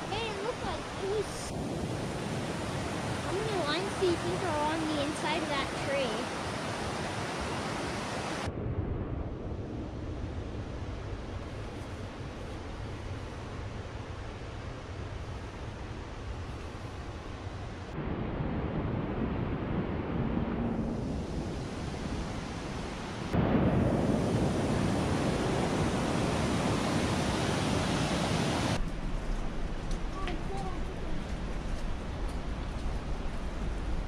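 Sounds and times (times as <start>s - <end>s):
creek and waterfall rushing: 0.0s - 8.5s, 24.7s - 28.8s.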